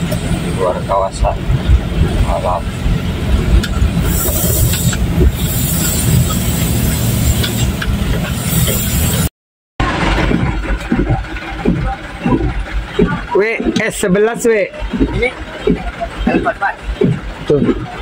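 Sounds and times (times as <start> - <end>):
truck engine and road rumble: 0.0 - 18.0
hiss: 4.0 - 7.7, 8.4 - 9.3.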